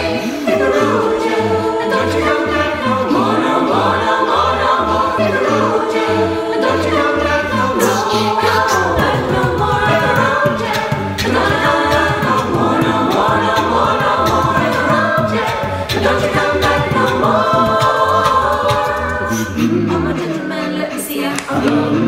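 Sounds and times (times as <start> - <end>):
choir singing in close harmony: 0.0 - 22.0.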